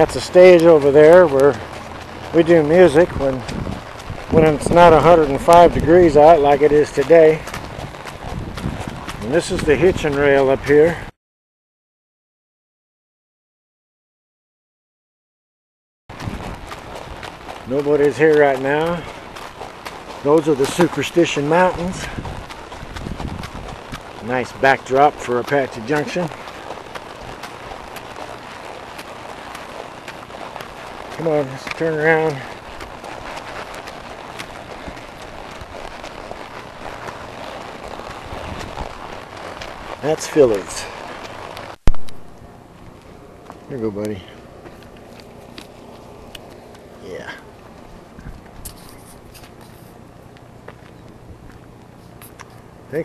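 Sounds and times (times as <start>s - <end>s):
horse hooves walking on dirt: 0.0s - 11.1s, 16.1s - 53.0s
outdoor noise: 0.0s - 11.2s, 16.1s - 53.0s.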